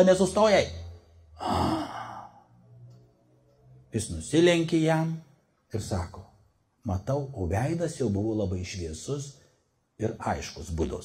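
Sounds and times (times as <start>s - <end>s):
man sighing into microphone: 1.4s - 2.4s.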